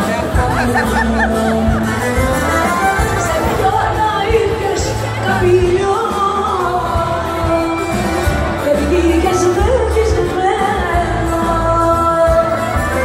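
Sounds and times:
live band with deep bass: 0:00.0 - 0:13.0.

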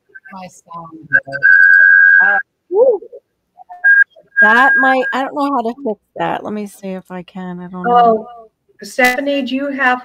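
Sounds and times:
voices: 0:00.1 - 0:10.0
audio feedback whistle: 0:01.1 - 0:05.2.

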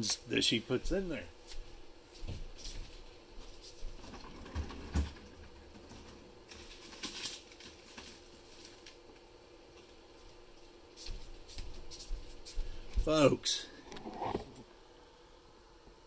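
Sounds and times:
low steady hum: 0:00.0 - 0:16.0.

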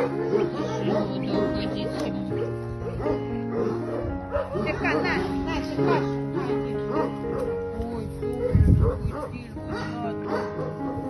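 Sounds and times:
dog barking deeply: 0:00.0 - 0:11.0
music with sustained notes: 0:00.0 - 0:11.0.

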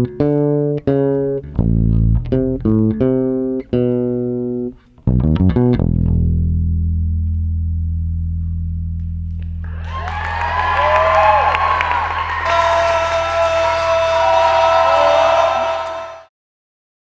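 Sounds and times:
electric bass guitar low note: 0:00.0 - 0:09.7
audience cheering and clapping: 0:09.6 - 0:16.3.

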